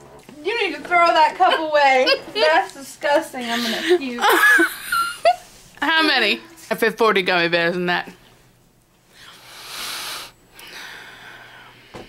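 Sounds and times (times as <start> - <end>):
person breathing hard: 9.1 - 12.0.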